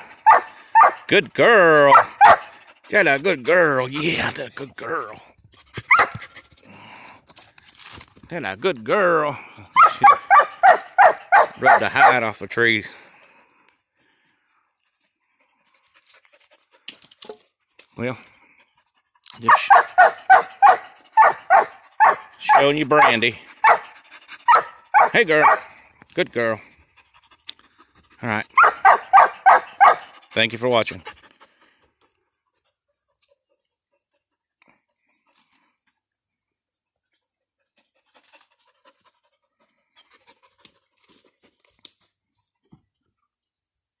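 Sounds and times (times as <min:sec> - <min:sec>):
dog panting: 0:18.4 - 0:25.7, 0:26.8 - 0:34.4, 0:37.6 - 0:40.9.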